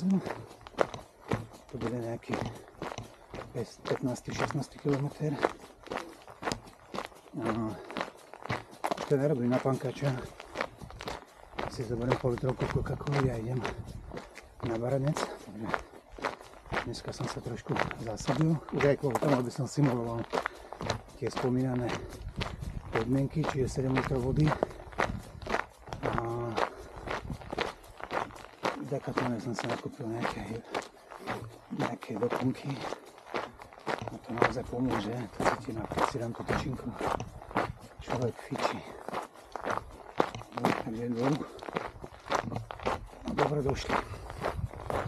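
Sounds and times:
person's voice: 0.0 - 0.5, 1.7 - 2.6, 3.4 - 5.6, 7.3 - 8.0, 9.0 - 10.4, 11.6 - 13.8, 14.6 - 15.8, 16.8 - 22.2, 22.8 - 24.8, 26.0 - 26.8, 28.6 - 30.8, 31.4 - 33.0, 34.0 - 37.2, 38.0 - 39.1, 40.4 - 41.7, 42.3 - 44.2
person speaking: 0.0 - 25.2, 25.9 - 27.0, 27.6 - 33.2, 33.8 - 39.3, 40.2 - 45.0
footsteps on gravel: 0.0 - 45.0.

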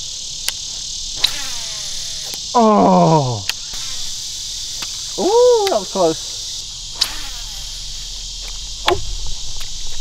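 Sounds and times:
insects buzzing: 0.0 - 10.0
fishing reel spool whine: 1.2 - 10.0
sharp click: 8.4 - 9.8.

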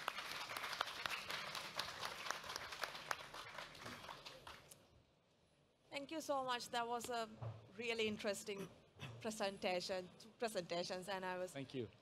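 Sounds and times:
audience applause: 0.0 - 4.7.

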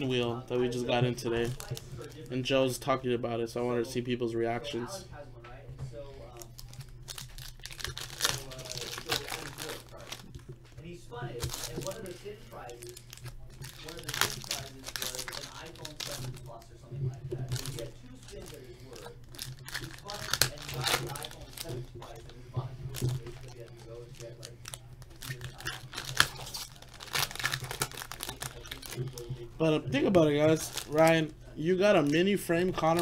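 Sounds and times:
wrapper crinkling and tearing: 1.3 - 2.4, 6.3 - 10.5, 11.4 - 16.7, 17.3 - 33.0.

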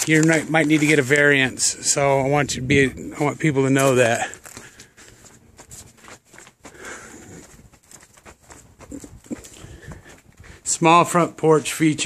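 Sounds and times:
footsteps on concrete: 0.0 - 12.0.

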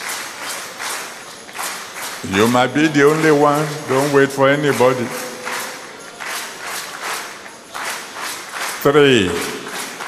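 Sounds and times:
congregation noise: 0.0 - 10.0.

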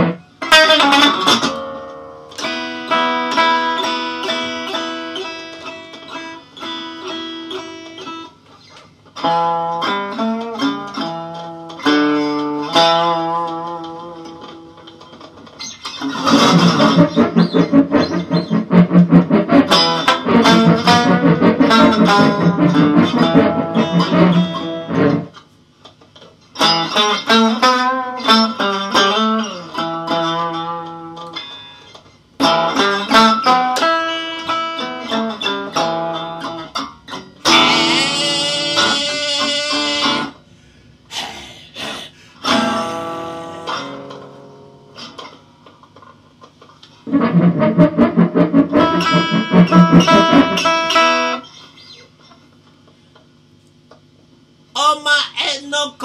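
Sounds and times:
loud electric guitar strumming: 0.0 - 25.5, 26.5 - 45.6, 46.9 - 52.2.

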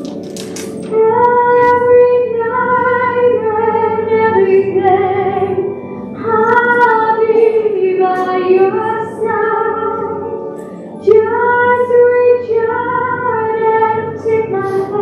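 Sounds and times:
woman singing long gliding notes: 0.9 - 15.0.

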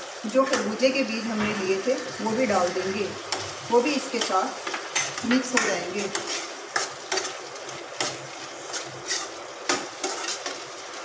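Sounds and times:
food sizzling in a pan: 0.0 - 11.0
spatula scraping a pan: 1.4 - 11.0.

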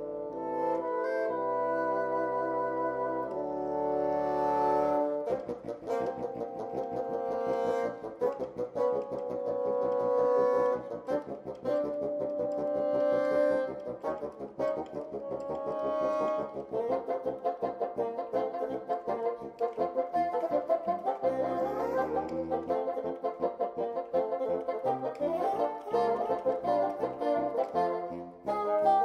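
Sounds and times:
bassoon ensemble playing: 0.0 - 29.0.

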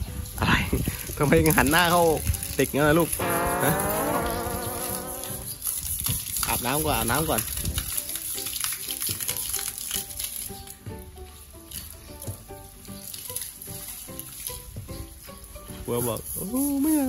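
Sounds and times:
hose water spraying on hide: 0.0 - 17.0.

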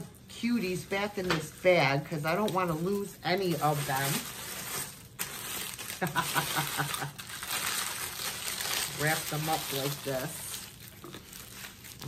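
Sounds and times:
woman laughing softly: 6.0 - 7.3.

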